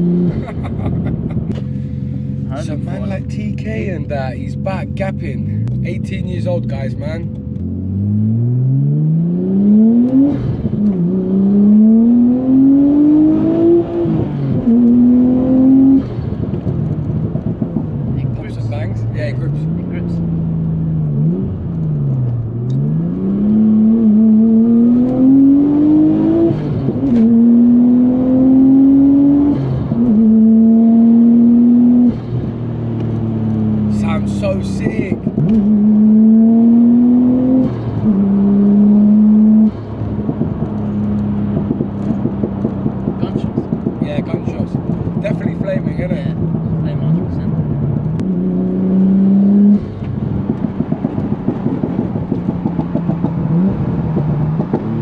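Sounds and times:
turbocharged car engine accelerating: 0.0 - 55.0.

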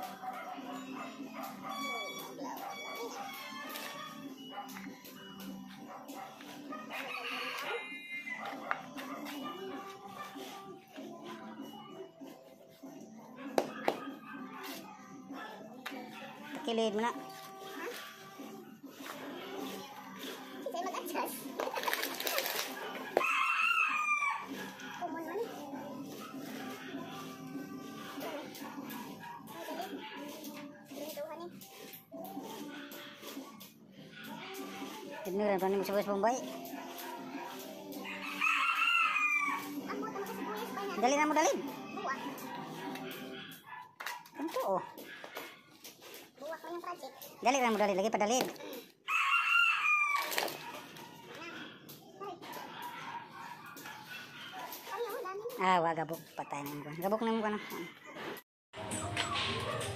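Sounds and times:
rooster crowing: 6.9 - 8.6, 23.2 - 24.7, 38.0 - 39.8, 49.1 - 50.7.

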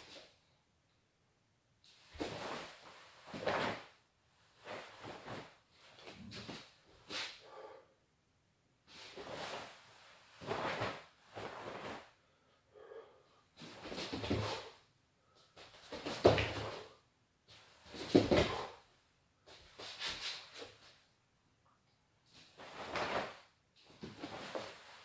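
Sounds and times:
heavy cloth swishing and snapping: 1.9 - 3.9, 4.6 - 7.3, 9.0 - 12.1, 22.4 - 25.0.

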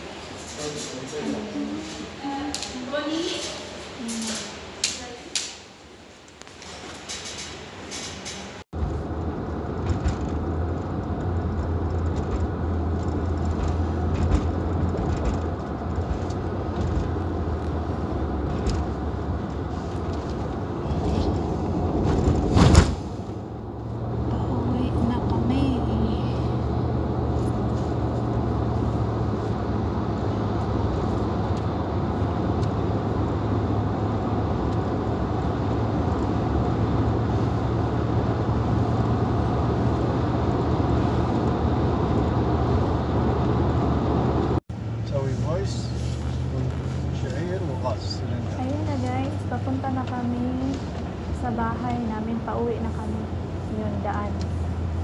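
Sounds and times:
car engine and road hum: 0.0 - 55.0.

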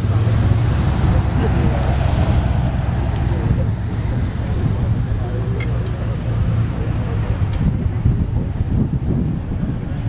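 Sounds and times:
faint indistinct voices: 0.0 - 10.0
low vehicle rumble: 0.0 - 10.0.

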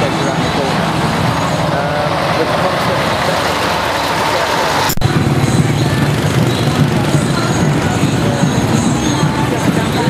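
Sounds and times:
crowd voices: 0.0 - 10.0
vehicle engines running: 0.0 - 10.0.

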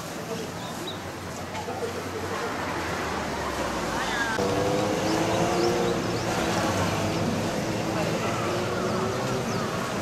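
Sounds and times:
murmur of voices: 5.3 - 10.0.

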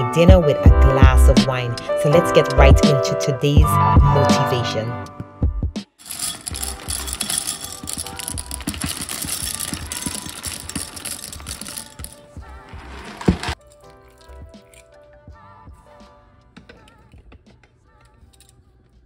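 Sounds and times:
background music: 0.0 - 18.9
dry pasta rattling into glass cup: 6.0 - 14.4.

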